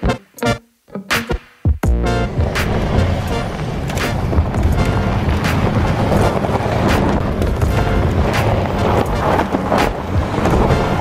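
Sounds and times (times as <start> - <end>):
music with a beat: 0.0 - 11.0
car engine and tyre rumble: 1.8 - 11.0.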